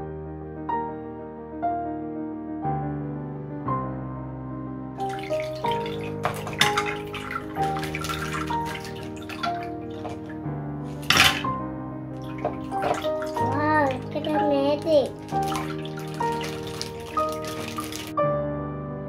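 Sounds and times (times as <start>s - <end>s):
gentle piano music: 0.0s - 19.0s
water splashing into a glass dish: 5.0s - 11.6s, 12.2s - 18.2s.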